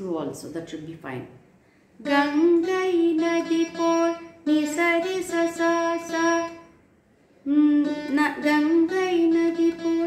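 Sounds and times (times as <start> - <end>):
plucked veena with bending notes: 2.0 - 6.8, 7.5 - 10.0.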